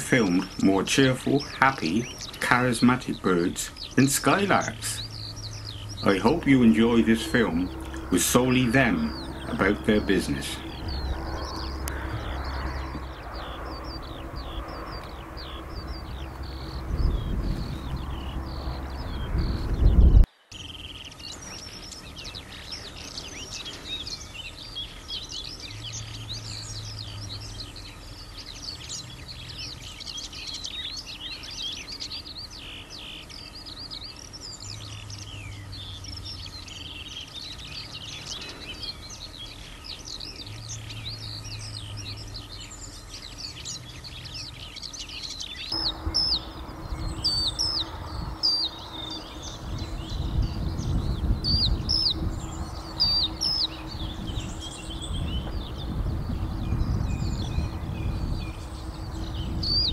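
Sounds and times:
skylark singing: 0.0s - 59.9s
low rumble: 5.0s - 20.3s, 45.8s - 59.9s.

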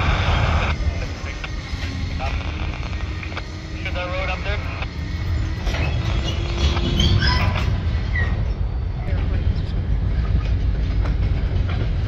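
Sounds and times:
freight cars rolling on rails: 0.0s - 12.0s.

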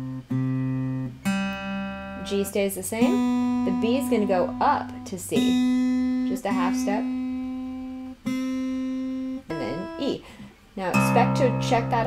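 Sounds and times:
guitar string plucked: 0.0s - 12.0s.

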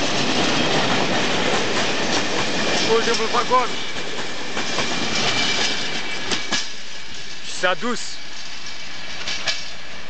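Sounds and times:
steel wheels rumbling on rails: 0.0s - 10.0s.

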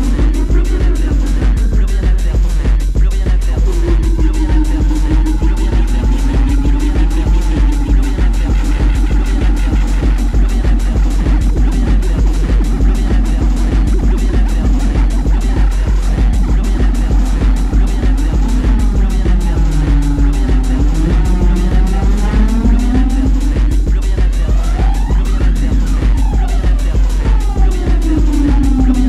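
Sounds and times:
electronic dance music: 0.0s - 29.0s
pounding kick drum: 0.0s - 29.0s
siren-like sweeping tones: 3.7s - 29.0s.

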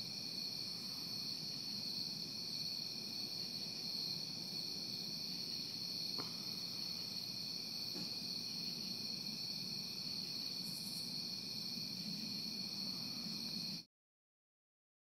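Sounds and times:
crickets trilling: 0.0s - 13.9s.

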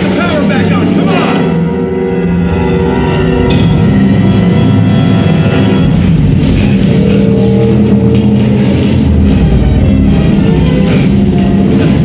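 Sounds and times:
loud film score music: 0.0s - 12.0s.

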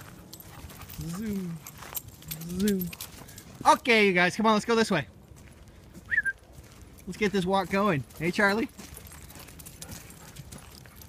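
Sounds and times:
footsteps on gravel: 0.0s - 4.1s, 5.2s - 11.0s.

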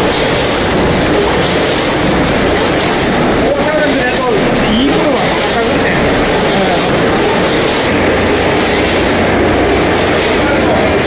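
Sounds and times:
packing machinery running: 0.0s - 11.0s.

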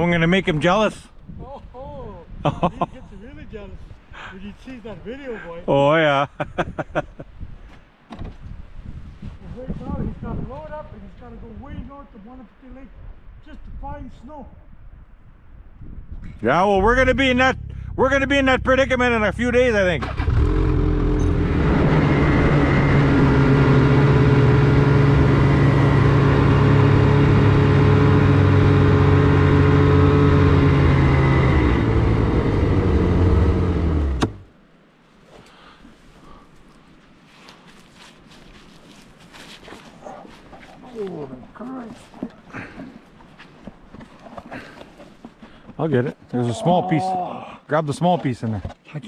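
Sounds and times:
snowmobile engine running: 16.8s - 34.4s.

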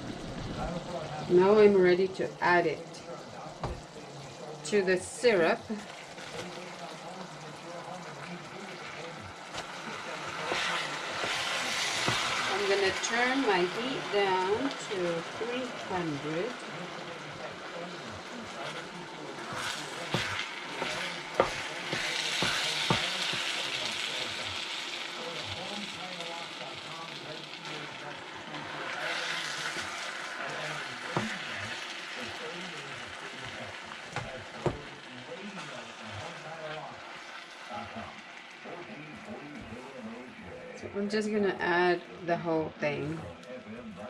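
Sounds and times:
rice simmering and bubbling: 0.0s - 40.8s.

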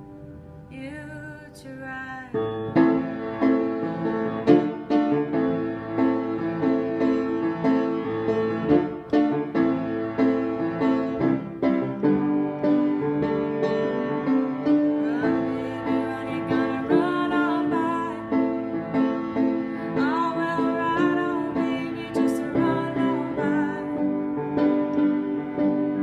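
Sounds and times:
piano chords on keyboard: 0.0s - 26.0s.

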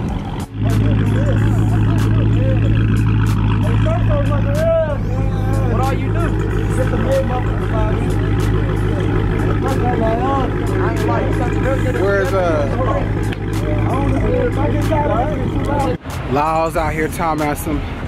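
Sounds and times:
car engine idling: 0.0s - 18.0s
people talking: 0.6s - 17.9s.

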